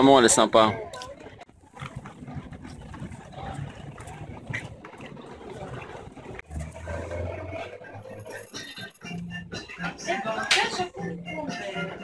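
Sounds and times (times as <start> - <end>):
low traffic rumble: 0.0 - 12.0.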